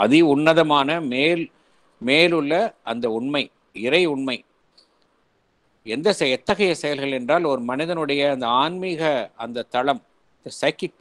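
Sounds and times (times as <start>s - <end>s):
man talking: 0.0s - 4.5s, 5.8s - 11.0s.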